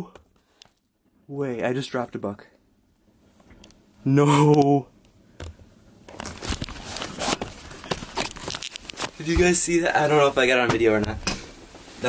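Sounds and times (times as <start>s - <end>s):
camera handling rustling: 5.4s - 9.2s.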